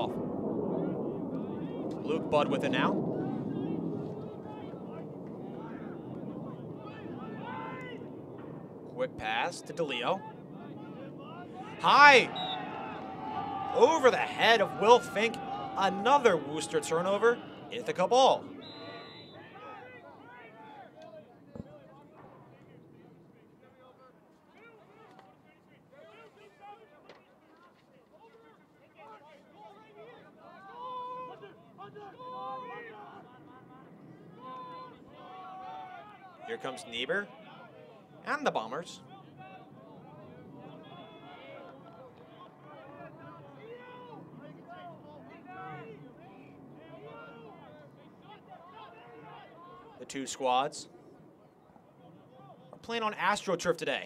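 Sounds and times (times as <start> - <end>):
distant players shouting: 1.0 - 8.6, 9.6 - 22.8, 29.0 - 38.0
distant voices calling out: 3.0 - 20.2.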